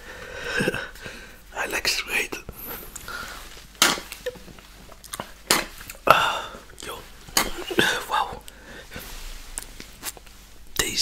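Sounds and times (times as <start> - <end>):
lip smack: 3.8 - 4.4, 5.0 - 6.0.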